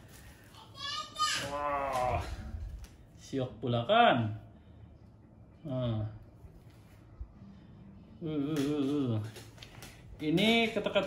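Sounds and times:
child calling out high-pitched: 0:00.6 - 0:02.2.

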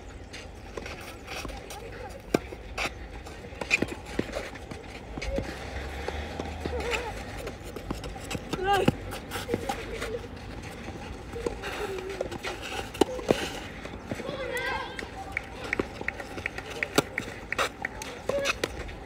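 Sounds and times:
shuffling footsteps: 0:00.0 - 0:19.0
children's voices calling out: 0:05.2 - 0:17.1.

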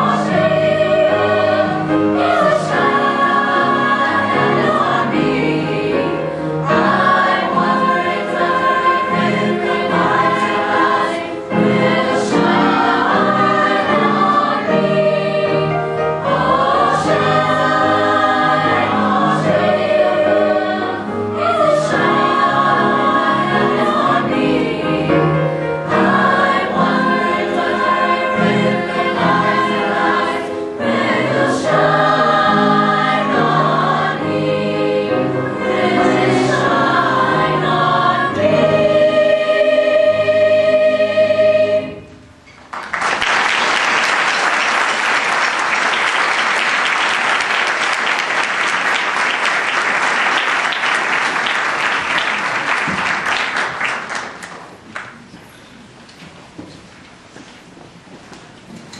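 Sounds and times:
choir breaths: 0:00.0 - 0:42.2
choir singing in parts: 0:00.0 - 0:42.4.

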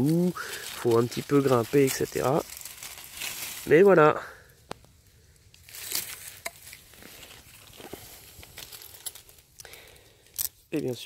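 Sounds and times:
plastic and paper rustling: 0:00.0 - 0:03.9.

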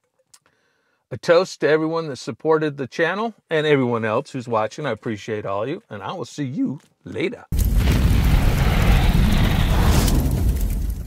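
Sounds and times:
deep boom-like rumble: 0:07.6 - 0:11.0.

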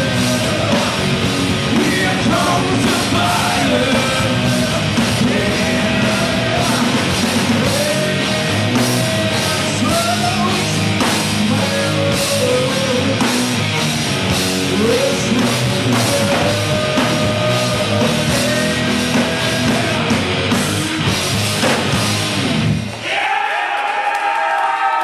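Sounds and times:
rock band playing loud: 0:00.0 - 0:23.0
person singing into microphone: 0:01.7 - 0:10.8, 0:11.5 - 0:13.3, 0:14.7 - 0:20.2.

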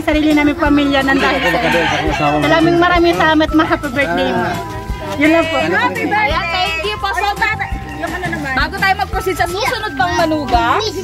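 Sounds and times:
rooster crowing: 0:01.0 - 0:02.9.

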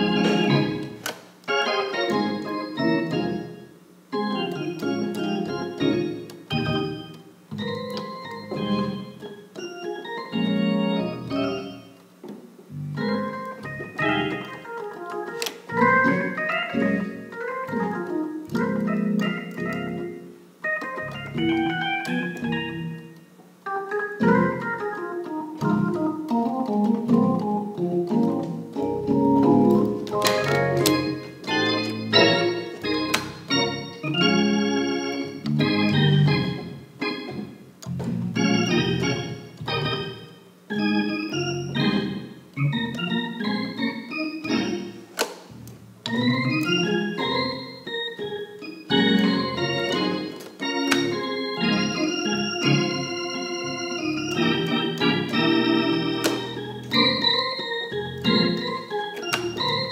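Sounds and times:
organ playing sustained chords: 0:00.0 - 0:59.9.

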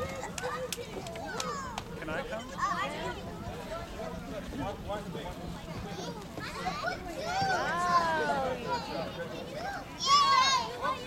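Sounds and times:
adult voices: 0:00.0 - 0:11.0.

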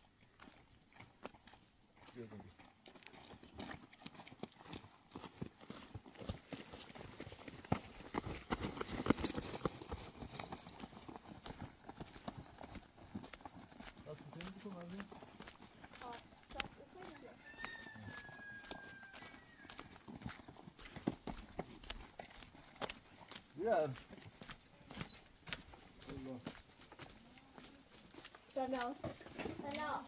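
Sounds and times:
footsteps on stony ground: 0:00.0 - 0:30.0.

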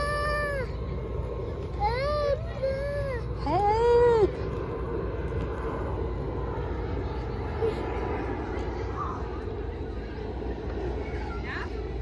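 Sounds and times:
faint distant voices: 0:00.0 - 0:12.0
low outdoor background rumble: 0:00.0 - 0:12.0.

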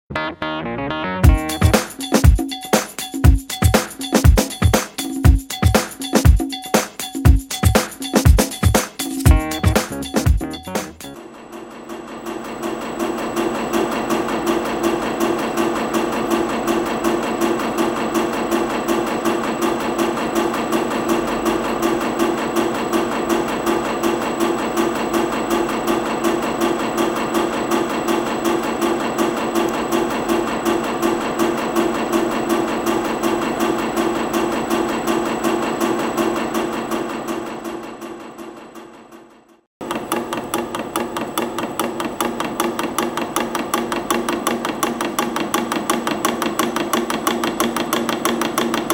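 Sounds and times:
coil-winding machine humming: 0:09.2 - 0:39.2, 0:39.8 - 0:48.9.

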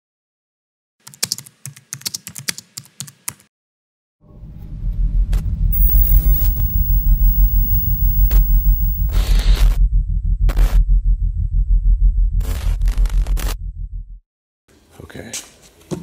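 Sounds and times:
deep pulsing low drone: 0:05.8 - 0:09.2.

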